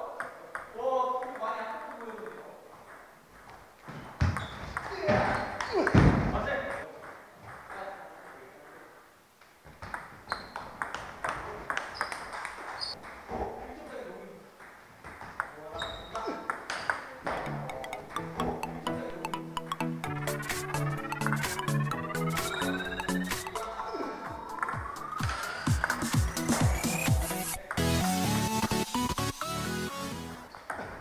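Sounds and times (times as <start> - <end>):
table tennis ball ticking: 16.5 - 23.7, 24.4 - 27.1
faint table tennis ticks: 17.3 - 19.9.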